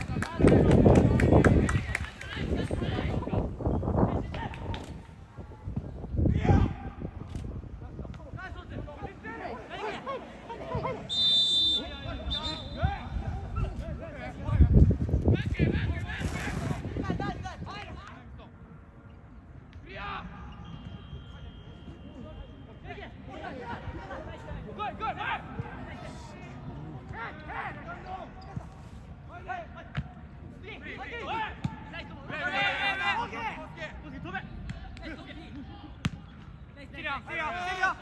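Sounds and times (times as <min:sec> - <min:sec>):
players shouting: 0:30.7 - 0:36.2, 0:36.9 - 0:38.0.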